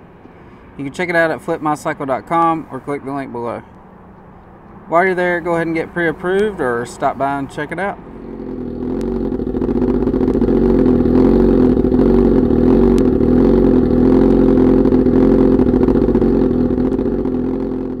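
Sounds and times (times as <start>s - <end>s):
motorcycle engine idling: 3.8s - 18.0s.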